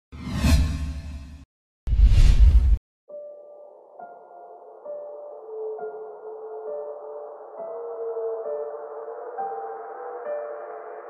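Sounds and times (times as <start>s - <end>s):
cinematic whoosh: 0.2s - 2.8s.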